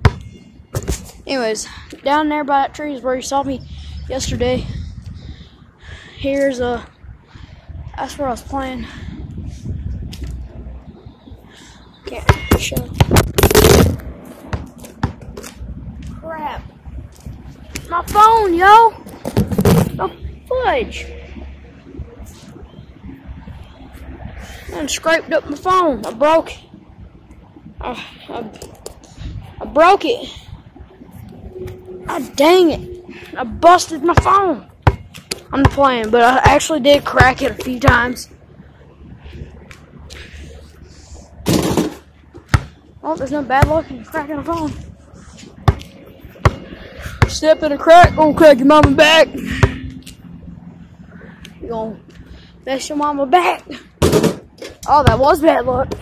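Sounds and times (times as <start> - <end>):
basketball bouncing on pavement: 0.0 - 1.2, 12.1 - 15.6, 33.6 - 38.2, 41.5 - 44.9, 45.6 - 50.0, 54.0 - 56.0.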